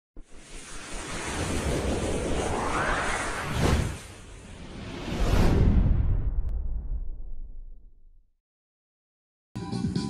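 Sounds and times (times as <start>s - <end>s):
whoosh with low rumble: 0.2s - 8.2s.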